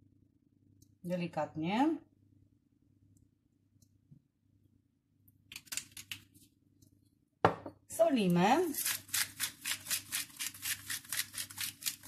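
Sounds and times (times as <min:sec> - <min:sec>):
glass bottle knock on wood: 0:07.4 - 0:07.8.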